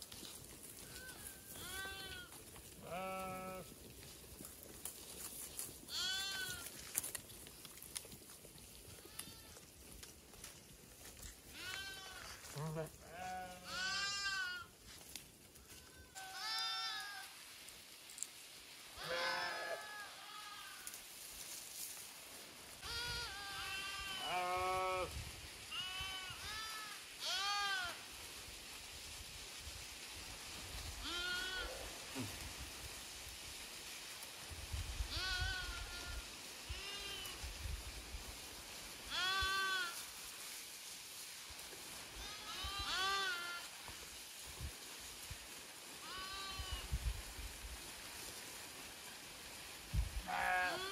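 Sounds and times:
sheep bleating: 0:01.0 - 0:03.7, 0:11.6 - 0:14.7, 0:19.0 - 0:20.8, 0:22.9 - 0:25.1, 0:50.2 - 0:50.9.

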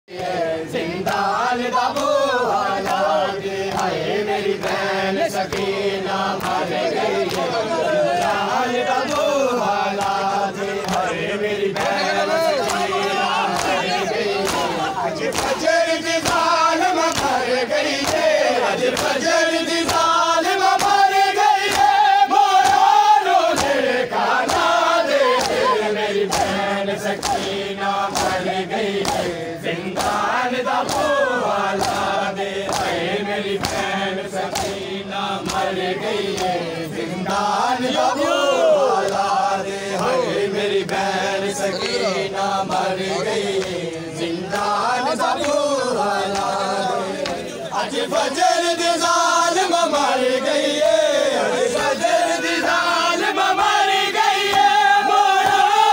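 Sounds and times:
men chanting a lament: 0:00.1 - 0:55.9
hands slapping chests: 0:01.0 - 0:09.2, 0:09.9 - 0:37.6, 0:39.0 - 0:45.6, 0:46.2 - 0:47.5, 0:54.4 - 0:54.7, 0:55.3 - 0:55.7.

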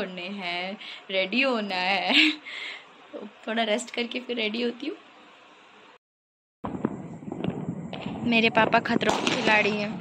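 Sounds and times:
firecrackers cracking: 0:06.6 - 0:10.0.

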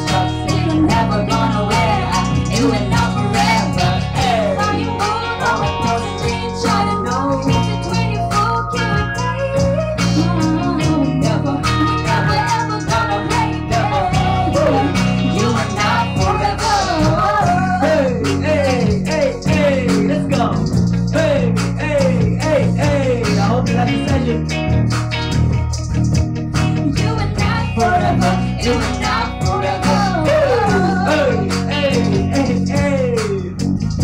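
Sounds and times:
person singing: 0:00.0 - 0:24.6, 0:26.8 - 0:33.6
live band playing: 0:00.0 - 0:34.0.

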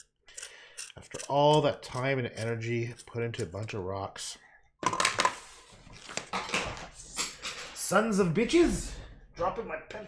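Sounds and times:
pencil clattering on wooden table: 0:06.0 - 0:07.8.

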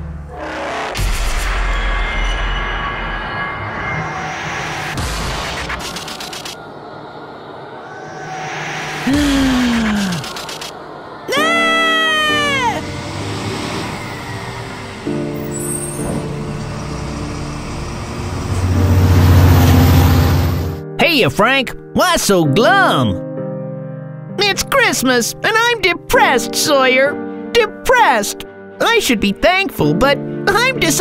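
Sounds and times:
pitched sound effect gliding down: 0:01.0 - 0:20.6
bright rising and falling effect: 0:01.3 - 0:20.6
background music with held chords: 0:11.1 - 0:31.0.

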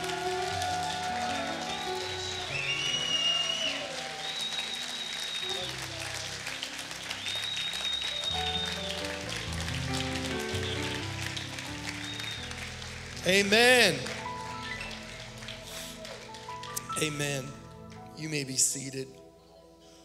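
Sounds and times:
congregation applauding: 0:00.0 - 0:19.0
soft music with sustained chords: 0:00.0 - 0:20.0.

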